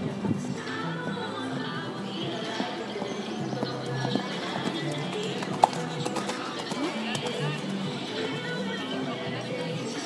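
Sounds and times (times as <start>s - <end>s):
music playing: 0.0s - 10.0s
horse hoofbeats on sand: 2.3s - 8.5s.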